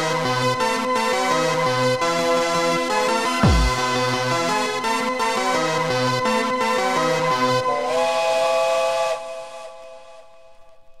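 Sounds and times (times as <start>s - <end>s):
happy hardcore bassline: 3.4s - 4.1s
held synth chord: 3.4s - 4.2s.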